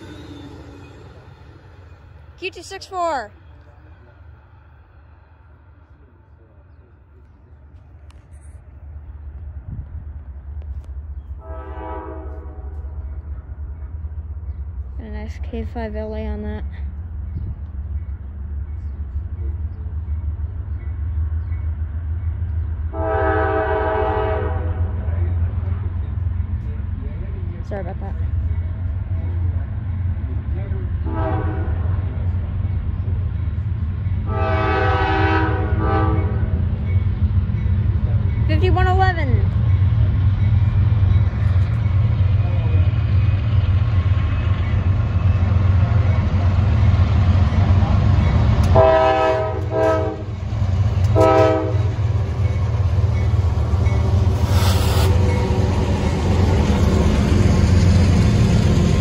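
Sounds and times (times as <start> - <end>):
low train rumble: 0.0 - 59.0
locomotive air horn blast: 11.4 - 12.8, 23.0 - 25.0, 31.1 - 31.8, 34.3 - 36.4, 48.7 - 50.3, 51.1 - 51.9, 54.4 - 55.2.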